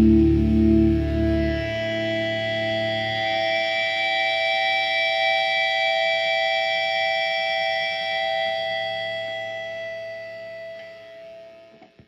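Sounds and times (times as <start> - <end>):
electric guitar feedback: 0.0 - 12.0.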